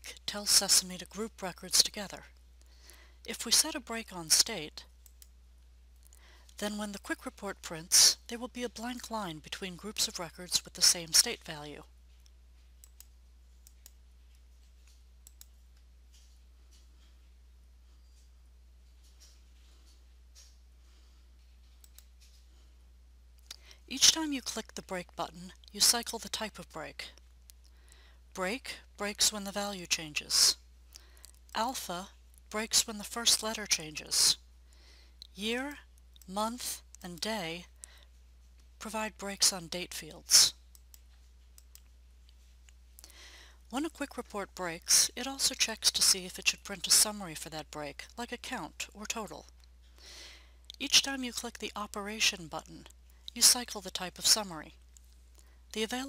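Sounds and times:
low steady hum: 0.0s - 56.0s
computer mouse clicks: 5.0s - 5.4s, 12.2s - 15.6s, 21.7s - 22.2s, 40.7s - 42.0s.

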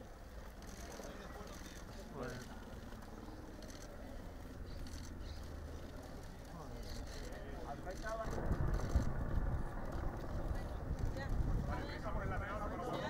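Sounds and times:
low rumble: 7.8s - 12.9s.

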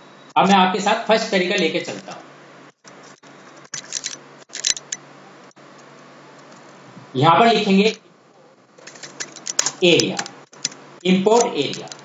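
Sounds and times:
steady low hiss: 0.0s - 12.0s
sharp computer clicks: 1.2s - 2.2s, 2.8s - 5.0s, 8.8s - 12.0s.

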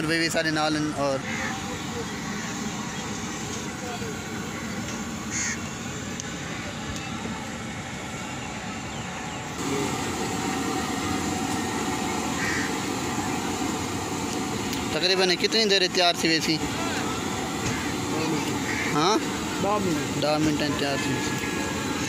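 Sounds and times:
steady rushing haze: 0.0s - 22.0s
faint distant voices: 1.1s - 7.7s.

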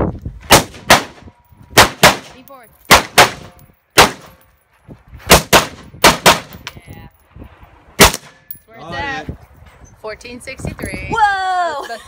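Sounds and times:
rifle shots: 0.5s - 1.2s, 1.8s - 4.3s, 5.3s - 6.6s, 8.0s - 8.4s.

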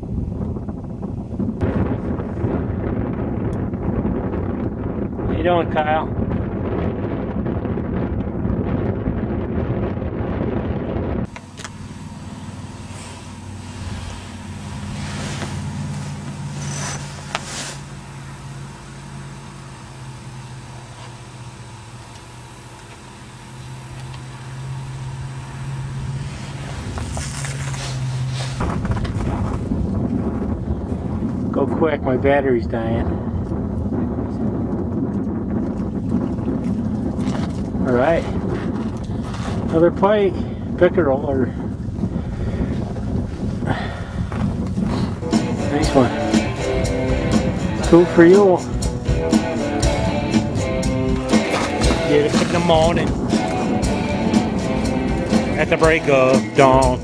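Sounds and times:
wind buffeting microphone: 0.0s - 20.4s, 23.7s - 57.0s
steady low hum: 0.0s - 57.0s.

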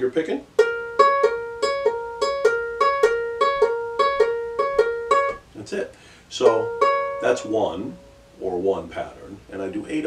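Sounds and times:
ukulele fingerpicked: 0.5s - 5.5s, 6.4s - 8.2s.

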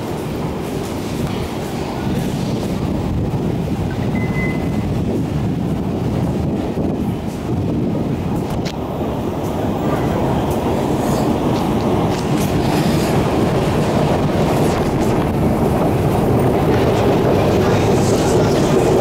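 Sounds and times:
low station rumble: 0.0s - 19.0s
short high beep: 4.0s - 4.8s.

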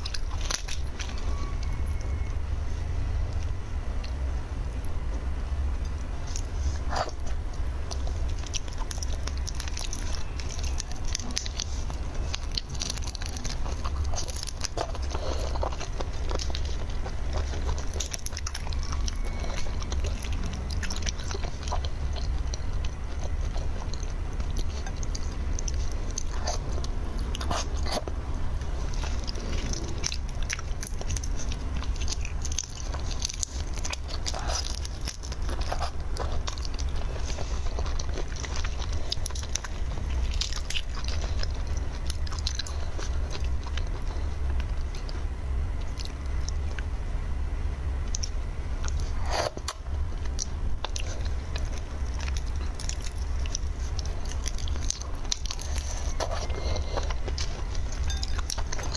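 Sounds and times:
sucking and chewing: 0.0s - 47.1s, 47.9s - 58.9s
steady low hum: 0.0s - 58.9s.

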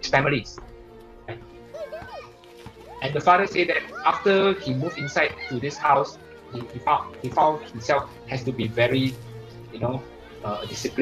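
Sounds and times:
soft background music: 0.0s - 11.0s
young children chattering: 1.6s - 3.0s.

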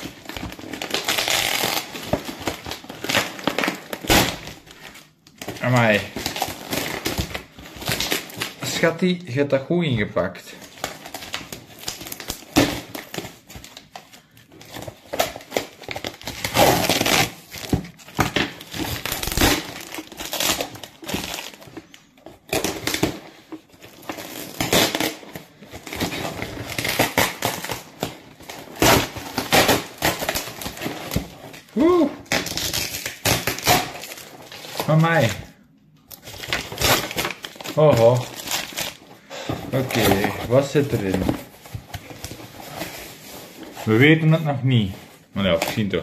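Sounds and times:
tissue paper rustling: 36.3s - 45.9s.

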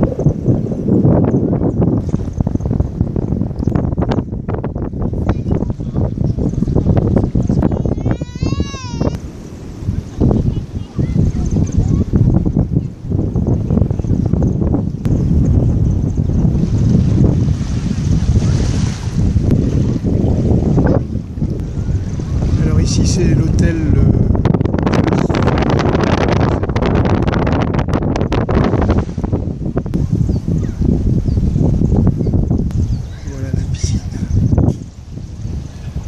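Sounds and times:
wind buffeting microphone: 0.0s - 36.0s.

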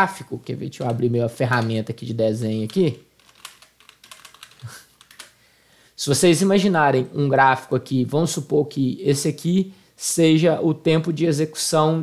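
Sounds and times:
computer keyboard key clicks: 2.7s - 5.4s.

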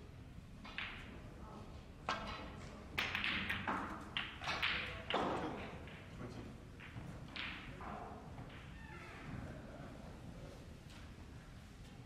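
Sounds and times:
snooker balls knocking: 3.0s - 6.1s.

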